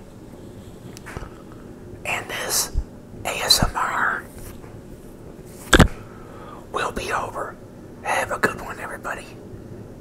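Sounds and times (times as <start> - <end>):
man whispering: 2.0 - 4.3, 6.6 - 9.4.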